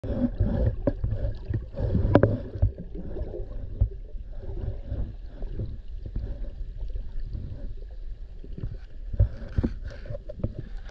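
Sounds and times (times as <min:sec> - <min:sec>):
low water rumble: 0:00.0 - 0:10.9
underwater sharp clicks and taps: 0:00.6 - 0:02.8, 0:08.6 - 0:10.9.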